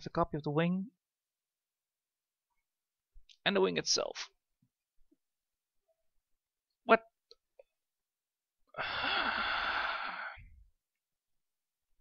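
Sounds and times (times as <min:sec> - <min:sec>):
man sighing: 0:08.8 - 0:10.5.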